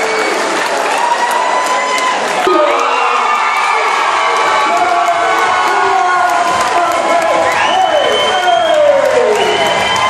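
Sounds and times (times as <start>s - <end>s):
crowd cheering and shouting: 0.0s - 10.0s.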